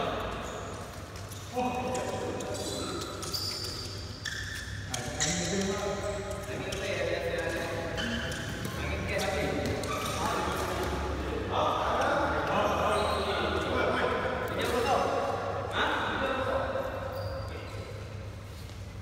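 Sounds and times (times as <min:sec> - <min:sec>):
people talking in a hall: 0:00.0 - 0:19.0.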